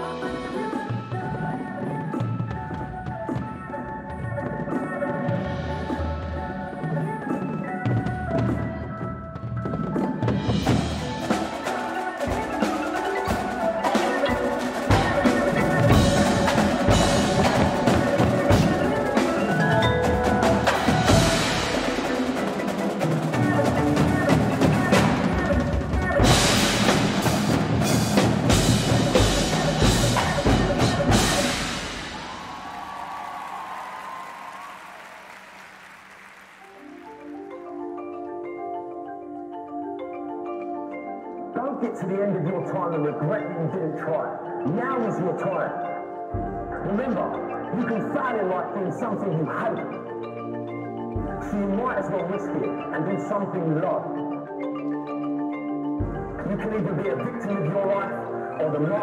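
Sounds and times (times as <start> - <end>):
mallet percussion: 0.0 - 59.0
marching drums: 9.5 - 37.0.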